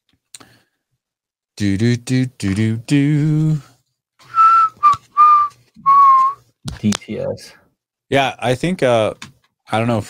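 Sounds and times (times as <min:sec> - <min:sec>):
man whistling short notes: 0:04.2 - 0:06.4.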